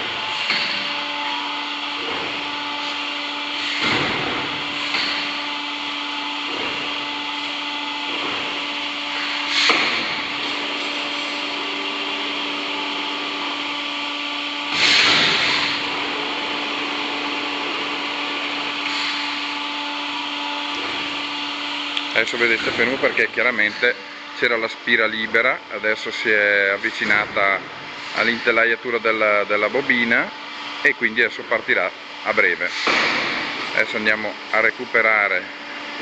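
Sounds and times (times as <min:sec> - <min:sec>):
machine hum: 0:00.0 - 0:36.0.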